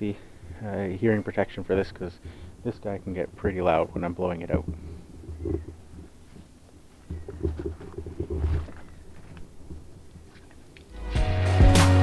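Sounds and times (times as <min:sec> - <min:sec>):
microphone handling rumble: 0:03.2 - 0:10.4.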